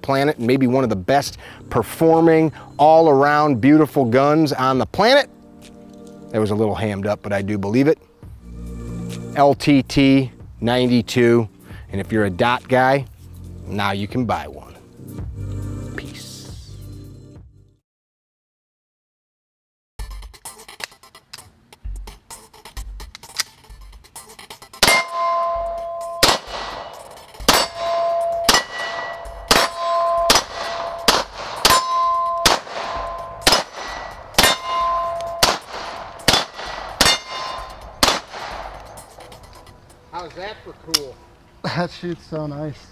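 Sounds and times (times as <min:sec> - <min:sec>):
pistol shots: 0:24.8 - 0:25.3, 0:26.0 - 0:39.3
steel plates ringing: 0:24.8 - 0:39.8.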